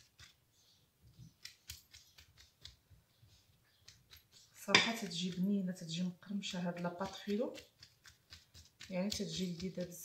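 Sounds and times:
pastry brush knocking on ceramic bowl: 4.6 - 5.4.

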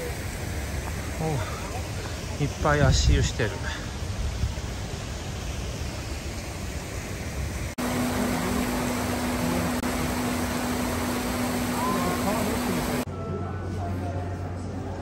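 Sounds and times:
faint outdoor background noise: 0.0 - 15.0.

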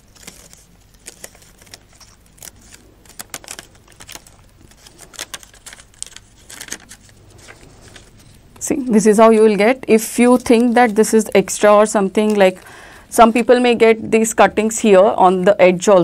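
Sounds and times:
paper crackling and rustling: 0.0 - 8.9, 9.7 - 12.7.

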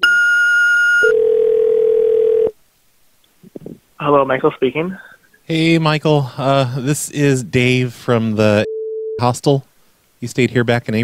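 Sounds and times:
steady phone tone: 0.0 - 2.5, 8.6 - 9.2.

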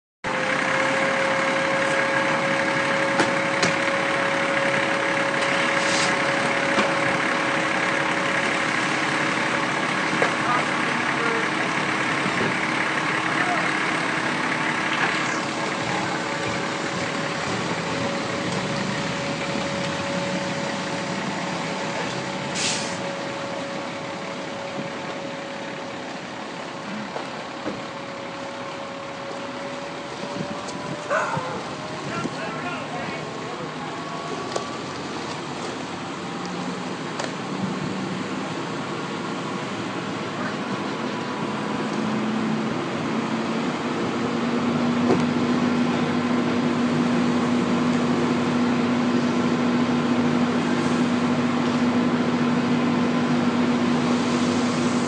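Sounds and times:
engine hum: 0.2 - 55.0
fire rushing: 1.8 - 25.1.

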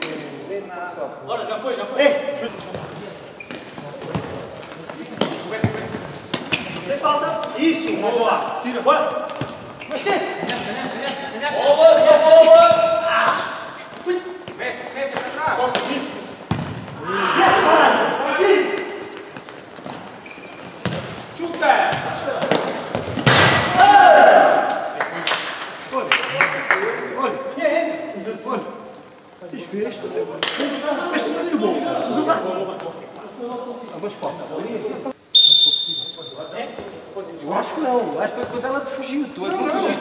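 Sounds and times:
players' voices: 0.0 - 40.0
court shoes squeaking: 2.3 - 23.6, 35.3 - 37.0
ball kicks and bounces on hard floor: 3.5 - 6.8, 9.3 - 10.0, 12.7 - 17.7, 20.8 - 23.7
players shouting: 23.5 - 24.8.

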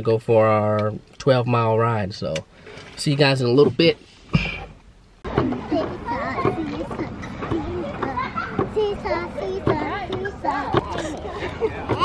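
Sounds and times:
children chattering and calling out: 5.2 - 12.0.

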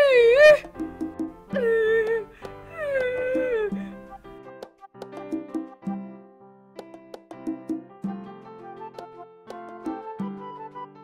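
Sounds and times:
woman wailing: 0.0 - 0.8, 1.5 - 4.0
soft background music: 0.0 - 11.0.

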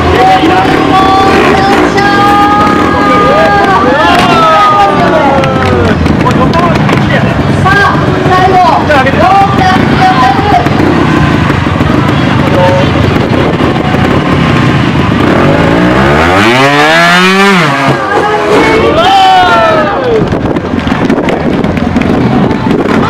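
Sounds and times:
motorcycle engine revving: 0.0 - 19.4.

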